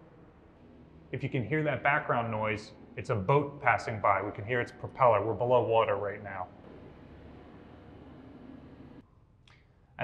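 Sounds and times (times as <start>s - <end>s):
low propeller rumble: 5.9s - 9.0s.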